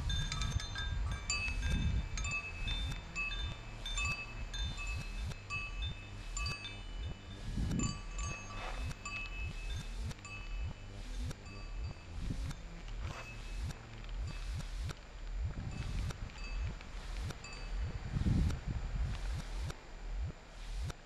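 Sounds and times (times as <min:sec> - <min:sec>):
metallic wind chime ringing: 0:00.0 - 0:13.8, 0:15.8 - 0:18.2
wind rumble on microphone: 0:00.0 - 0:21.0.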